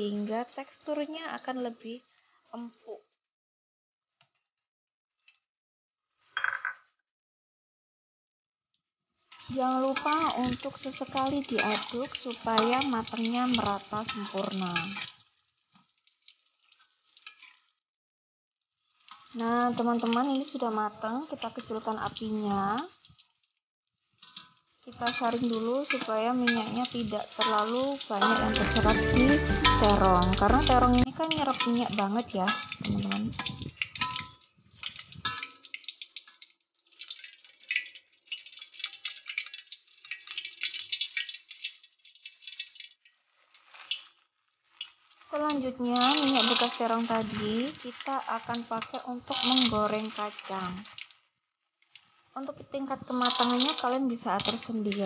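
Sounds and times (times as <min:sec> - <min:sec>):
metal spatula stirring in wok: 0:09.2 - 0:17.8, 0:18.8 - 0:20.2, 0:24.0 - 0:51.2, 0:53.0 - 0:54.8
vegetables sizzling in oil: 0:09.2 - 0:17.8, 0:18.8 - 0:55.0.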